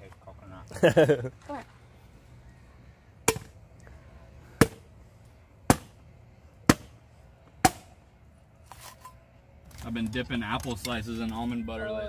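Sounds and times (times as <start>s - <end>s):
machete chopping coconut: 3.2s - 3.6s, 4.6s - 4.9s, 5.7s - 6.0s, 6.6s - 7.0s, 7.6s - 7.9s.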